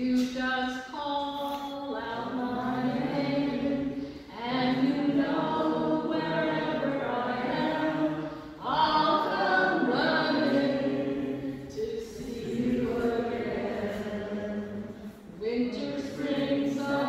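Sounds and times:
unaccompanied chant-like singing: 2.0 - 17.0.

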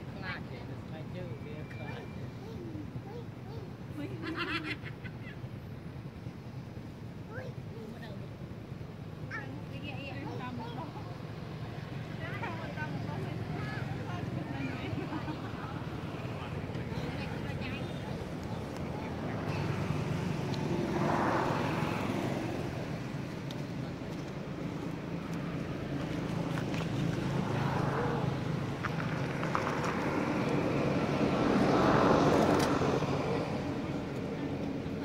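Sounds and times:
vehicles passing by: 0.0 - 35.0.

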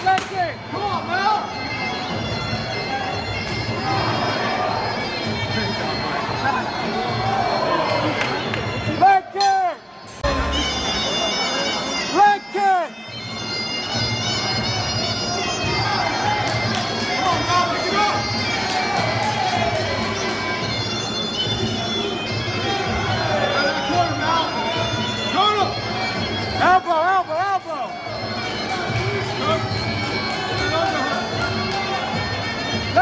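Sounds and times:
crowd noise: 0.0 - 33.0
oboe playing reedy melody: 0.6 - 33.0.

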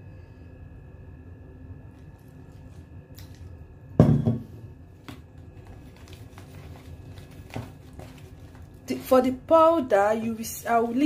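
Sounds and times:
loud thump: 4.0 - 4.5.

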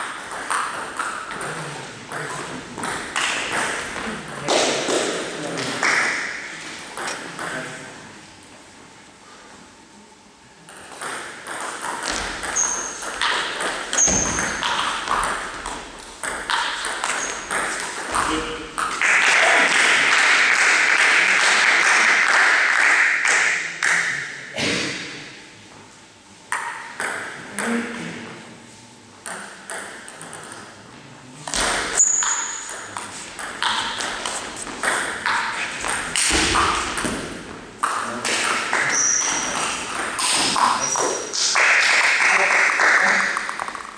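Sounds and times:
table tennis ball hits: 0.0 - 7.7, 10.7 - 25.1, 26.5 - 27.8, 29.2 - 30.7, 31.4 - 43.9
shoes squeaking: 12.0 - 15.7, 16.8 - 18.7, 31.5 - 37.0, 38.8 - 41.3.

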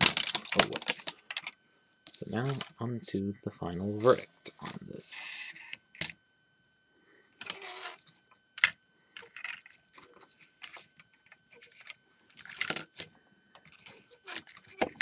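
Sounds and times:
plastic pieces rattling clatter: 0.0 - 1.5, 8.6 - 10.9, 11.6 - 13.0.

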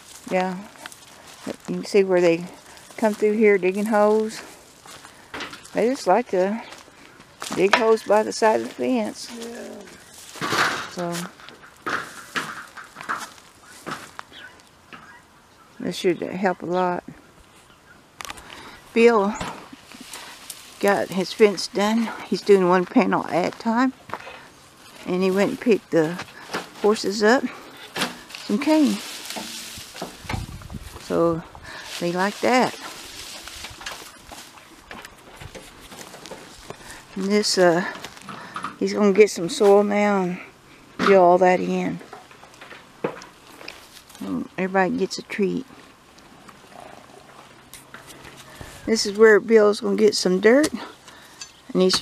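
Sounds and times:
footsteps on straw and dirt: 0.0 - 14.7, 17.4 - 38.5, 42.6 - 44.9, 47.2 - 49.4
cane stalks rustling and crackling: 0.0 - 52.0.

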